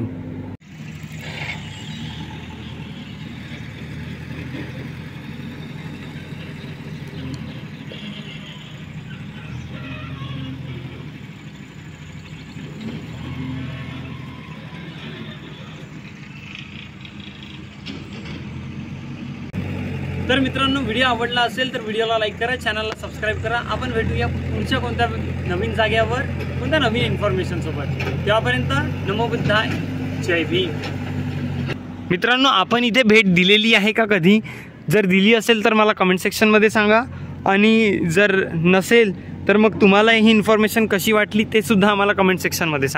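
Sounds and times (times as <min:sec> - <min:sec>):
engine running steadily: 0:00.0 - 0:33.6, 0:36.2 - 0:42.9.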